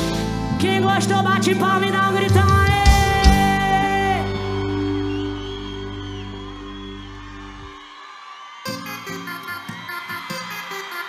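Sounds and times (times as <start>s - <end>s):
crowd cheers and whistles: 3.2s - 11.0s.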